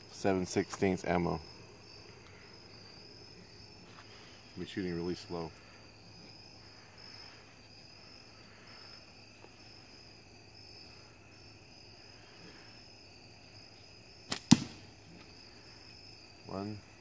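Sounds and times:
insects chirring: 0.0s - 17.0s
slingshot bands snapping: 14.3s - 14.8s.

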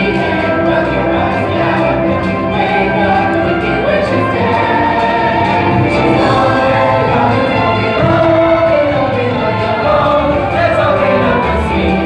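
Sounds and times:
instrumental accompaniment: 0.0s - 12.0s
musical cast chorus singing: 0.0s - 12.0s.

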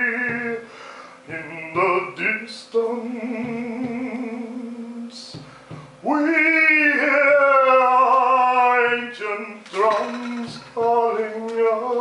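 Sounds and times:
overtone singing: 0.0s - 12.0s
breath hiss: 0.6s - 1.3s.

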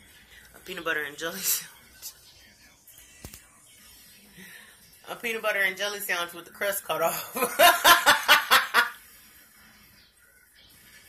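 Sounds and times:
woman laughing: 7.2s - 9.0s.

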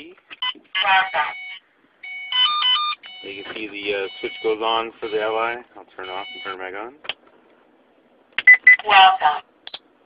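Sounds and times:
recorded voice prompt: 0.8s - 1.4s, 3.2s - 7.0s, 8.7s - 9.5s.

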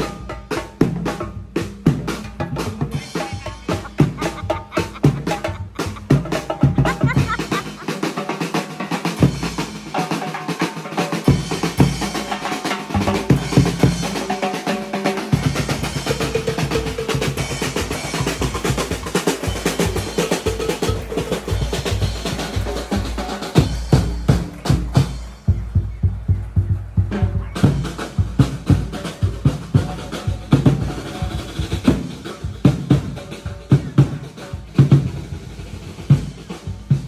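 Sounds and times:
bass drum beats: 0.0s - 7.9s, 12.9s - 14.4s, 15.3s - 37.0s
drum rolls: 0.0s - 37.0s
snare drums playing fast beat: 0.0s - 37.0s.

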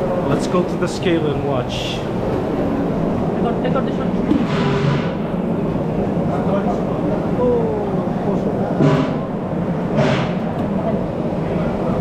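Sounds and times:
steady low rumble: 0.0s - 12.0s
chatter of voices: 6.0s - 9.0s.

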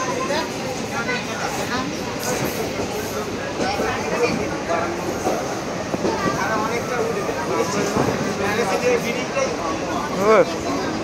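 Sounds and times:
people talking: 0.0s - 11.0s
train carriage running: 0.0s - 11.0s.

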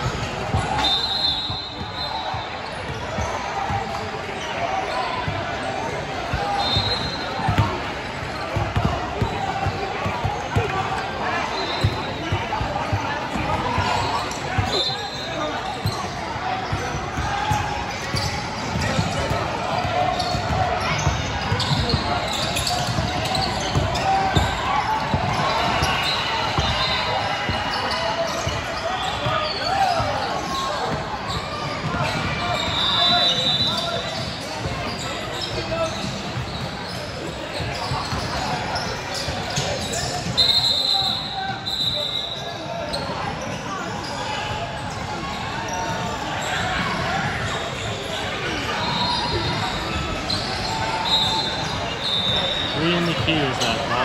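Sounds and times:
players and spectators calling out: 0.0s - 54.0s.

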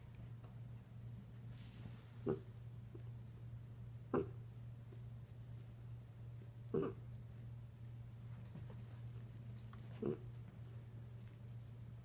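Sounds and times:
pig grunting: 2.2s - 2.6s, 4.1s - 4.4s, 6.7s - 7.1s, 9.9s - 10.4s.

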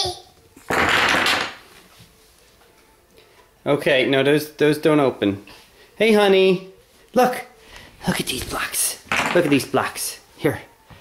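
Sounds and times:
toy blocks clattering on floor: 0.7s - 1.6s, 9.1s - 9.6s.

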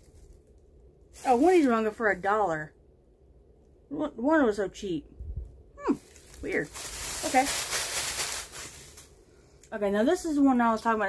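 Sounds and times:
plastic rustling and crinkling: 0.0s - 2.5s, 5.8s - 9.2s.

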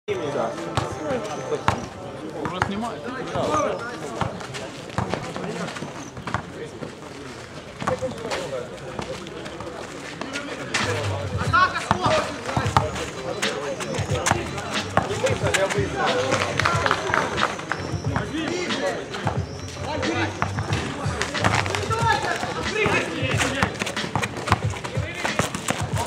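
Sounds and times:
background music: 0.1s - 2.4s, 10.8s - 26.0s
voices calling out: 0.1s - 26.0s
basketball bouncing on asphalt: 4.1s - 5.5s, 6.2s - 6.6s, 11.4s - 15.8s, 20.4s - 26.0s
sneaker steps: 4.1s - 18.6s, 19.2s - 26.0s.

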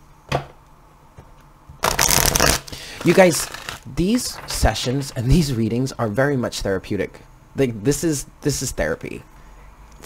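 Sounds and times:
cards shuffled by hand: 1.8s - 5.1s.

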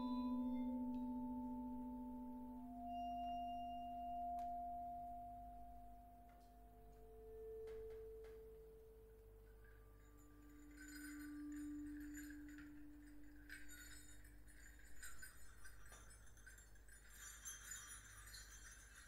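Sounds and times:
ringing metal percussion tones: 0.0s - 19.0s
glassy metallic jingling: 2.8s - 5.8s, 6.7s - 19.0s.

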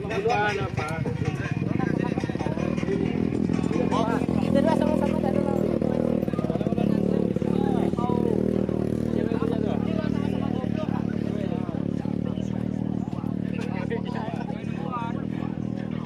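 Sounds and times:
motorcycle engine running: 0.0s - 16.0s
people talking: 0.0s - 16.0s.

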